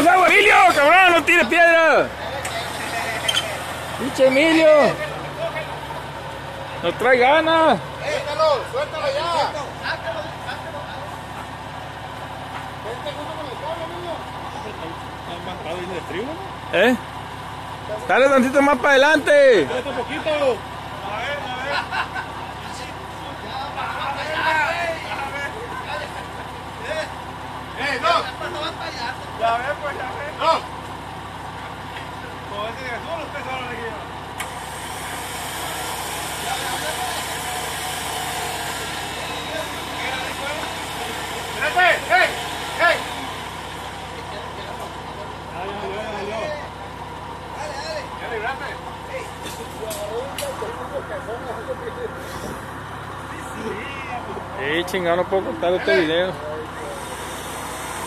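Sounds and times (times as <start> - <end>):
man shouting: 0.0 - 2.1
distant shouts and chatter: 0.0 - 58.0
engine running at low revs: 0.0 - 58.0.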